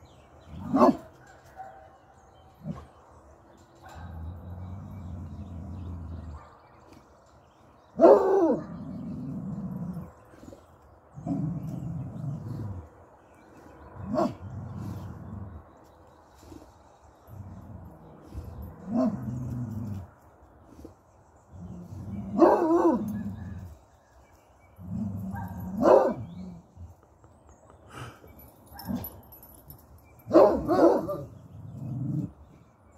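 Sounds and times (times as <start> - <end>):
large dog barking: 0.5 - 3.0, 7.9 - 9.3, 13.9 - 15.2, 18.8 - 19.7, 21.9 - 23.7, 24.9 - 26.6, 30.3 - 32.3
low dog growling: 3.9 - 6.5, 8.2 - 13.2, 13.8 - 15.8, 17.2 - 20.2, 21.5 - 23.7, 31.0 - 32.7
hound dog grumbling and baying: 8.2 - 10.5.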